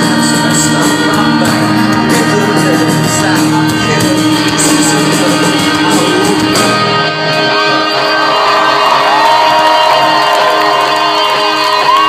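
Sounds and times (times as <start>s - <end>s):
electric guitars droning: 0.0s - 12.0s
crowd cheering and whooping: 6.0s - 12.0s.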